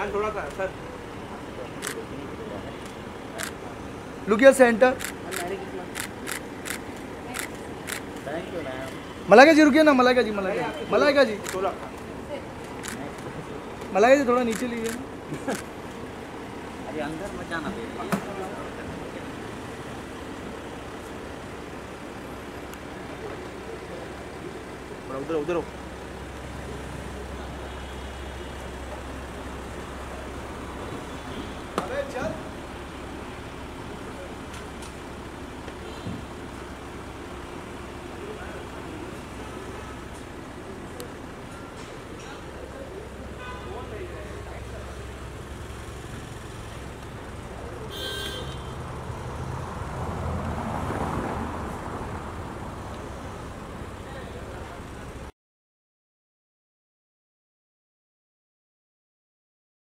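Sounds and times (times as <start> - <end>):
car engine idling: 0.0 - 49.5
street traffic noise: 0.0 - 55.3
car horn toot: 43.4 - 43.9, 47.9 - 48.8.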